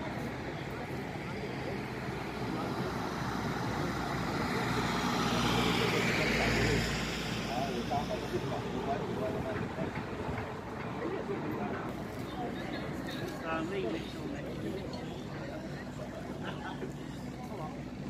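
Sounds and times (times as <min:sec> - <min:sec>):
street noise: 0:00.0 - 0:18.0
vehicle driving past: 0:03.0 - 0:09.4.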